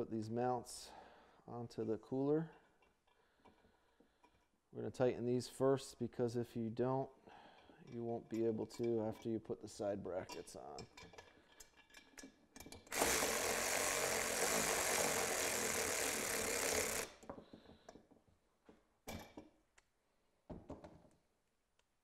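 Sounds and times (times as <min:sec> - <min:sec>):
cordless power tool running: 0:12.9 - 0:17.2.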